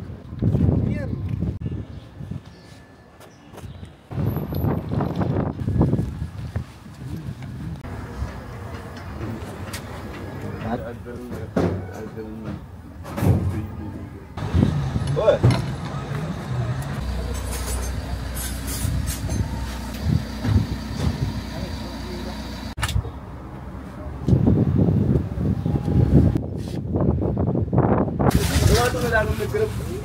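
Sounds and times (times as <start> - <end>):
voices talking: 7.6 - 24.3
motor vehicle running: 14.4 - 22.8.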